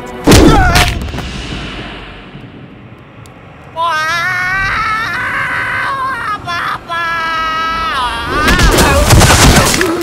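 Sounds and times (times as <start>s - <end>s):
boom rumble: 0.2s - 2.9s.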